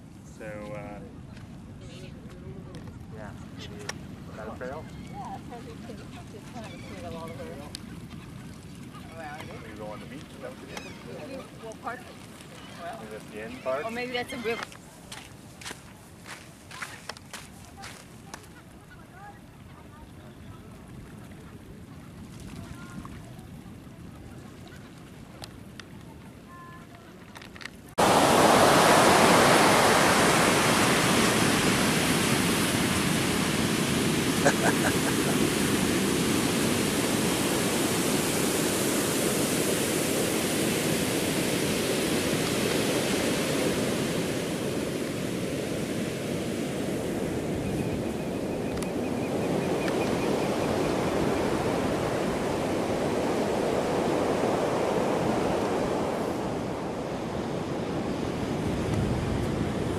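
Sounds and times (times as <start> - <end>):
ocean surf breaking on beach: 9.1 - 19.6, 27.7 - 59.9.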